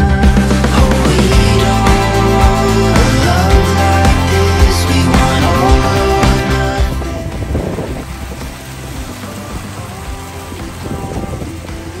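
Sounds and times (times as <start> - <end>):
background music: 0.0 - 12.0
fountain jets splashing: 0.0 - 12.0.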